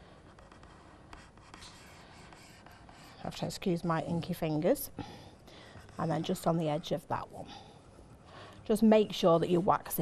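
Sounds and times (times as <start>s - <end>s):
stylus scratching on card: 0.2s - 4.6s, 5.8s - 10.0s.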